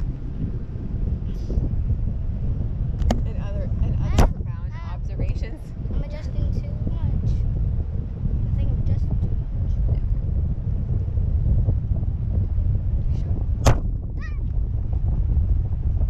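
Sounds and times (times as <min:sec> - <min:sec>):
wind buffeting microphone: 0:00.0 - 0:16.0
sharp knock: 0:13.6 - 0:13.9.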